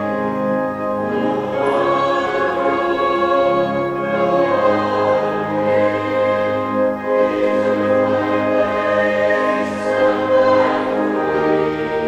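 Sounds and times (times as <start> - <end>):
congregation singing a hymn: 0.0 - 12.0
instrumental accompaniment: 0.0 - 12.0.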